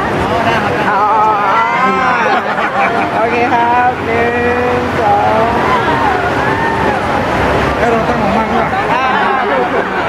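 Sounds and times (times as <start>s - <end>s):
crowd chatter: 0.0s - 10.0s
people talking at once: 0.0s - 10.0s.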